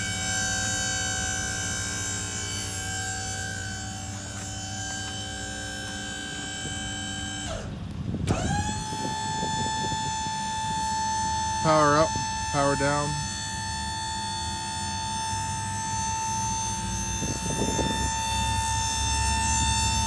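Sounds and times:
hydraulic pump whining: 0:00.0 - 0:20.0.

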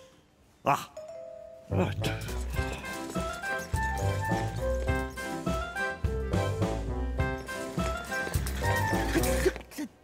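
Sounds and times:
doorbell chime: 0:01.0 - 0:01.6.

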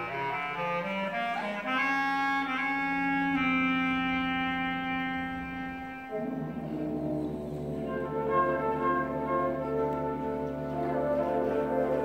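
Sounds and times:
concert band of woodwinds and brass: 0:00.0 - 0:12.0.

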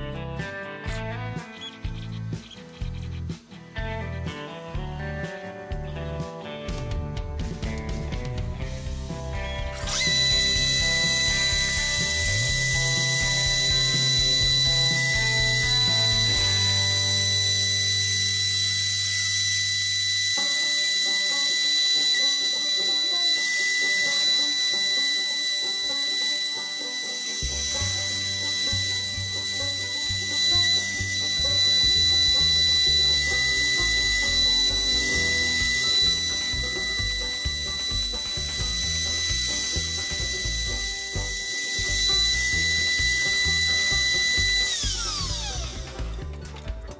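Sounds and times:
router spindle whining: 0:00.0 - 0:04.3, 0:08.7 - 0:46.9
background music: 0:00.0 - 0:46.9.

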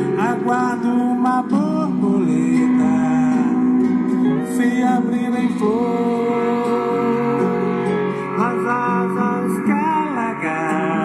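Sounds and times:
song playing from transistor radio: 0:00.0 - 0:11.0.

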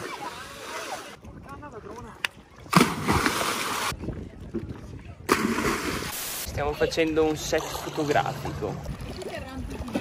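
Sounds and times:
body splashing into water: 0:02.7 - 0:03.9, 0:05.3 - 0:06.1.

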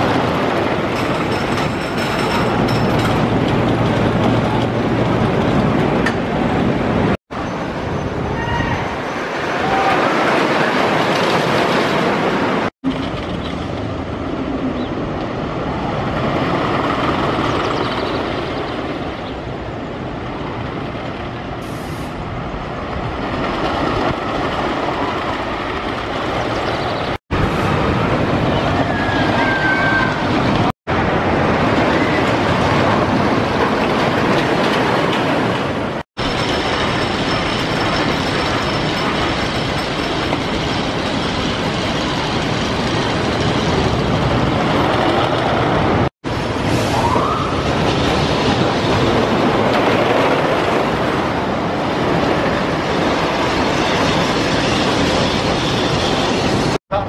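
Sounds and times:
roller coaster rumbling and clattering: 0:00.0 - 0:57.0.

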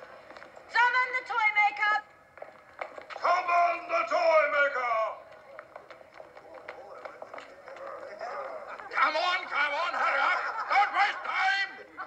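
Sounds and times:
shoes tapping on hard floor: 0:02.3 - 0:03.4, 0:05.2 - 0:09.0
faint voices: 0:03.1 - 0:12.0.

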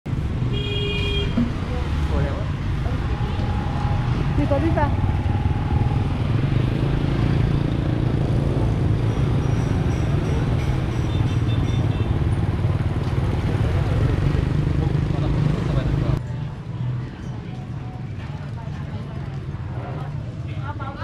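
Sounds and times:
motorbikes and scooters passing: 0:01.3 - 0:21.0
people's voices: 0:01.4 - 0:06.2.

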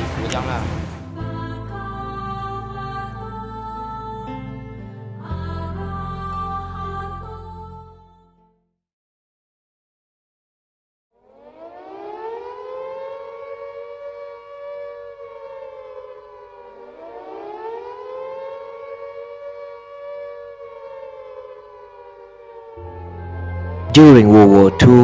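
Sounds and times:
air-raid siren wailing: 0:11.2 - 0:25.0.

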